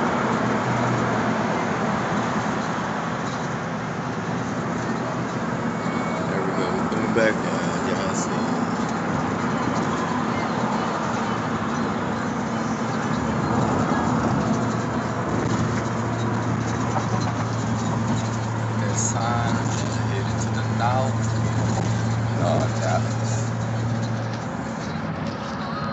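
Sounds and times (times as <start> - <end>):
car road and engine noise: 0.0 - 25.9.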